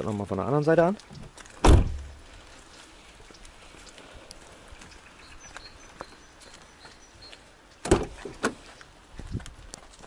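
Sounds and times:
footsteps on wet brick paving: 0:00.0 - 0:10.0
light rain falling: 0:00.0 - 0:10.0.

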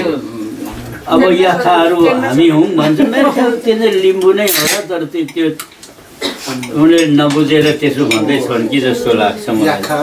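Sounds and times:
people talking: 0:00.0 - 0:05.6, 0:06.2 - 0:10.0
cutlery clinking on plates: 0:04.2 - 0:08.4.

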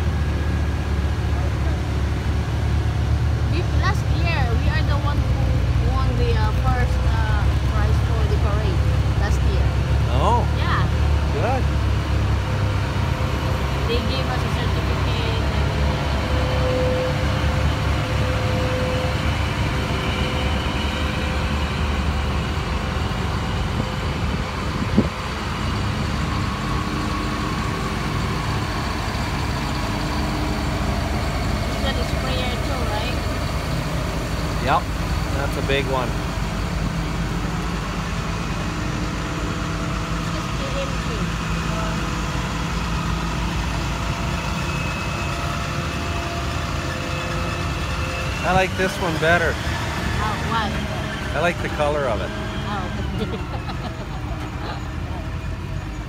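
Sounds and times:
utility vehicle engines rumbling: 0:00.0 - 0:56.0.

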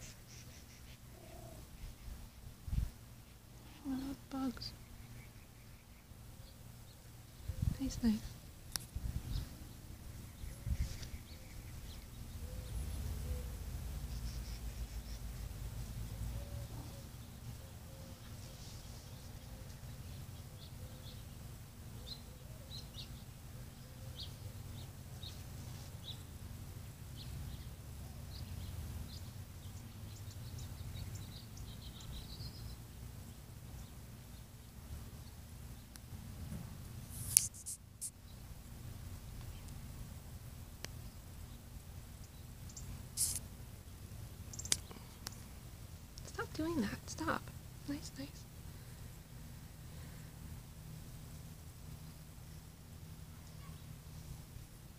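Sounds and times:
small birds chirping: 0:00.0 - 0:36.3, 0:37.2 - 0:54.7
steady low rumble: 0:01.1 - 0:17.9.

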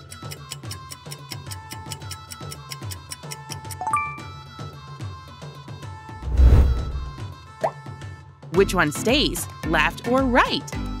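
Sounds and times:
light background music: 0:00.0 - 0:11.0
whooshing hit with deep boom: 0:06.2 - 0:07.2.

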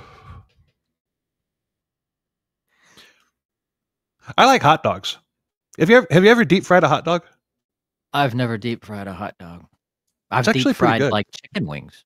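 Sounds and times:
faint intake of breath: 0:00.0 - 0:00.7, 0:02.7 - 0:03.4.

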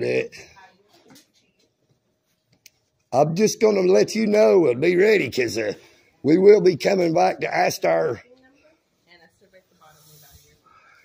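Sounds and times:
soft hiss: 0:08.2 - 0:11.0.

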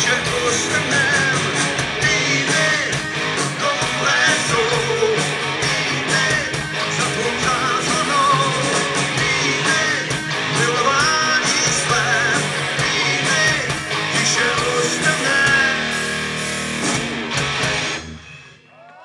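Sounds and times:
rock band playing live: 0:00.0 - 0:18.6.

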